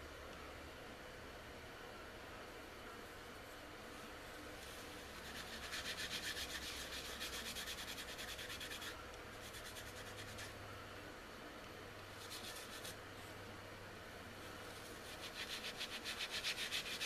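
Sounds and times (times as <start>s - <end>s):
hand rasping on turning wood: 15.2s - 17.0s.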